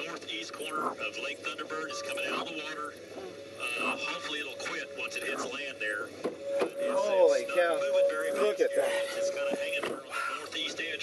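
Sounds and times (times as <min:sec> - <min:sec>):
steady hum: 0:00.0 - 0:11.0
tv broadcast voices: 0:00.0 - 0:11.0.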